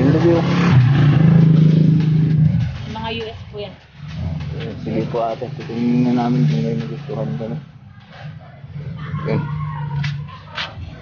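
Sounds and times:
low engine drone: 0.0 - 7.8.

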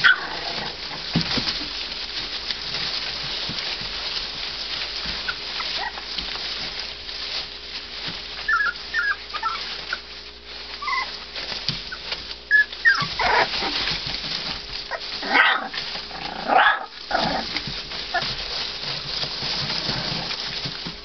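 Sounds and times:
puppies whimpering and squealing: 0.0 - 0.9, 5.0 - 6.5, 8.3 - 20.7.

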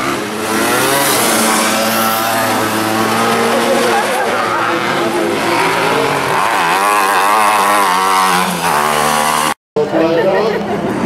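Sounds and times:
race car engine revving hard: 0.0 - 9.6.

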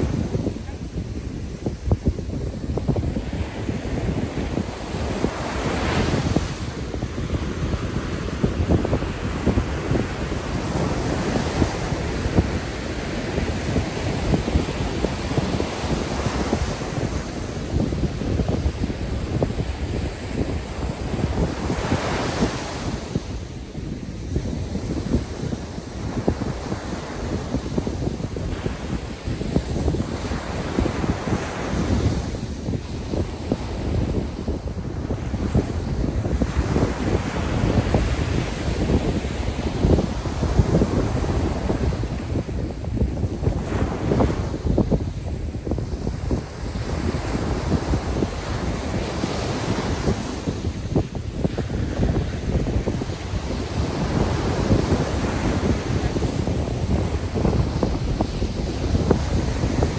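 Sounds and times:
ocean waves breaking on beach: 0.0 - 59.9
wind on microphone: 0.0 - 59.9.

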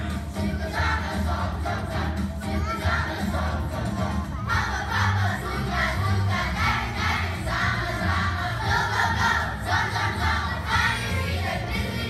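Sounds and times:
children's choir singing: 0.0 - 12.0
low musical accompaniment: 0.0 - 12.0.

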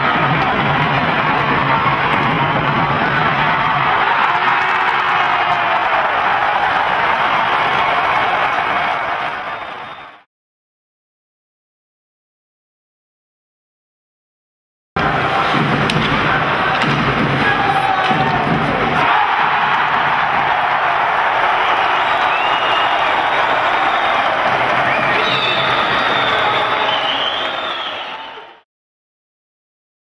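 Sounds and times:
arena crowd cheering: 0.0 - 10.3, 15.0 - 28.6.

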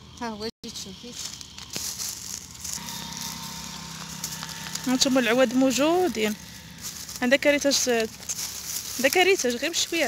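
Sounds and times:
twigs rustling and snapping: 1.2 - 2.8.

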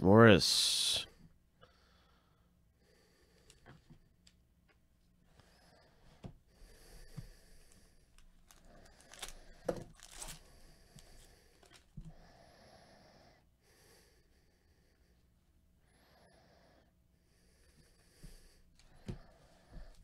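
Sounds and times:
foil wrapper tearing and crinkling: 8.4 - 10.5
cards sliding: 8.4 - 11.9.

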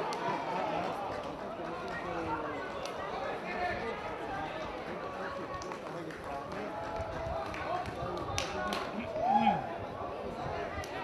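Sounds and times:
stadium crowd ambience: 0.0 - 11.0.

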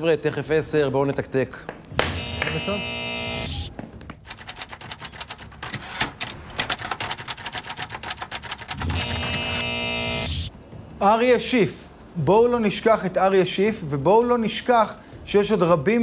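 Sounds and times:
typewriter keys clattering: 4.1 - 9.4.

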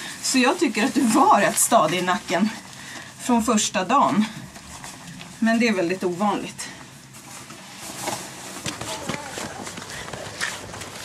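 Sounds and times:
faint voices: 8.6 - 11.0.

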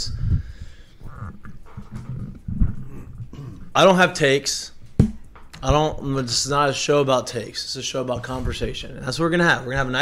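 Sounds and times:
microphone handling bumps and rubbing: 0.0 - 3.6, 4.8 - 6.3
heavy thump: 4.9 - 6.0.

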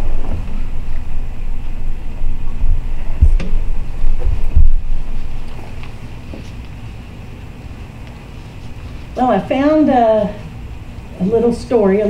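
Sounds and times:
low rumbling on microphone: 0.0 - 7.9.

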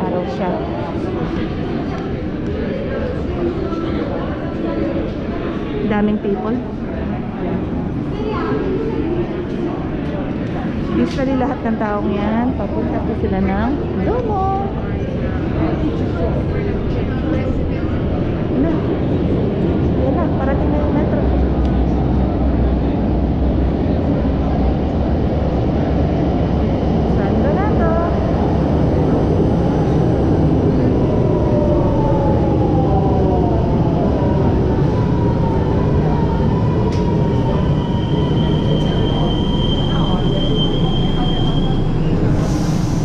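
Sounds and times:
train rumbling into station: 0.0 - 43.0
train whine falling in pitch: 35.0 - 43.0
high brake squeal: 37.7 - 43.0.

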